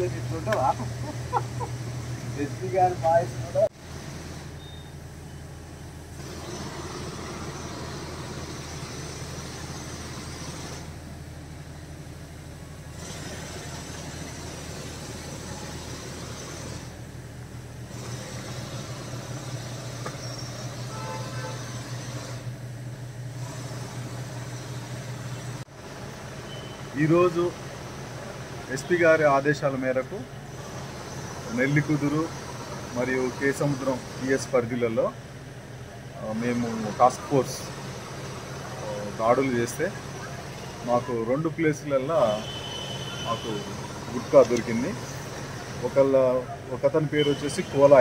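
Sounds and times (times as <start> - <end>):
steady low hum: 0.0 - 28.8.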